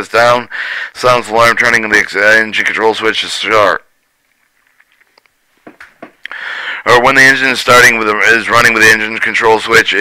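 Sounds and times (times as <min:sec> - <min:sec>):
faint clicks and ticks: 0:04.0 - 0:06.4.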